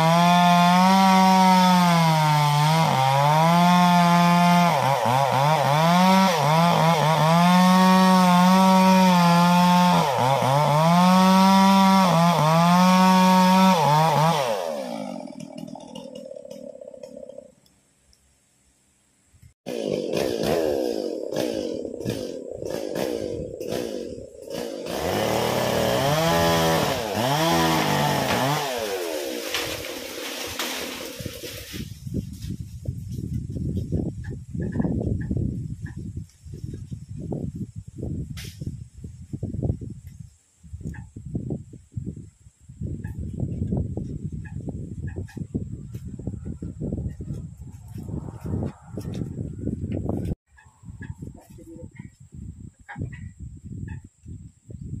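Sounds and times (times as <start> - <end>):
chainsaw cutting wood: 0.0 - 17.8, 19.7 - 31.9.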